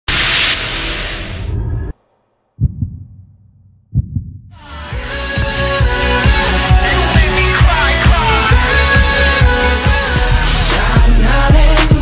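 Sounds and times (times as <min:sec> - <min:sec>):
deep heartbeat thumps: 0:02.6 - 0:04.6.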